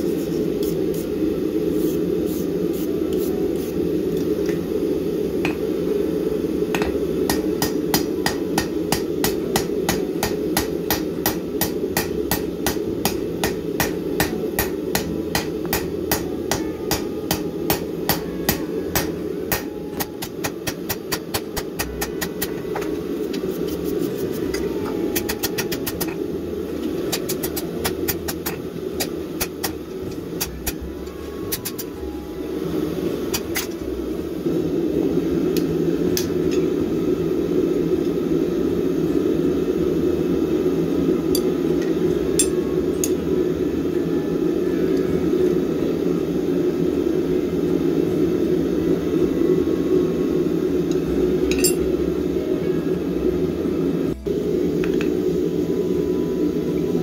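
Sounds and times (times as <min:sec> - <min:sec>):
steady low hum: 0:00.0 - 0:57.0
hammer striking steel on anvil: 0:06.8 - 0:22.9, 0:42.4 - 0:43.2.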